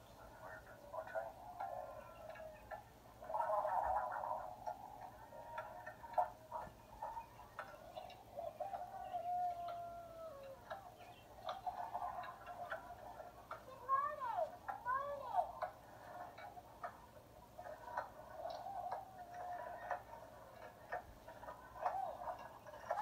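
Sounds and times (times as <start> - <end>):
clicking and ticking: 0.0 - 23.0.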